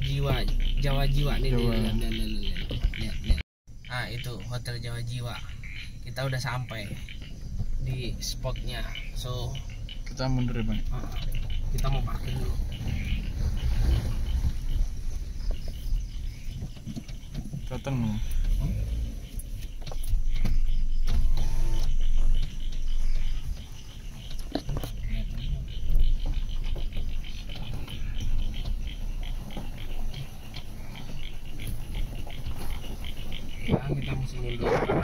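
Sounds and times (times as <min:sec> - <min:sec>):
car engine low rumble: 0:00.0 - 0:35.0
insects trilling: 0:00.0 - 0:35.0.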